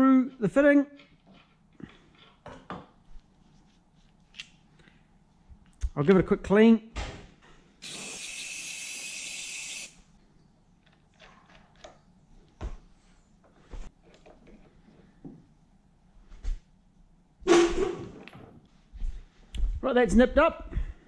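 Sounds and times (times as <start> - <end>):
aerosol spray hiss: 7.8 - 10.0.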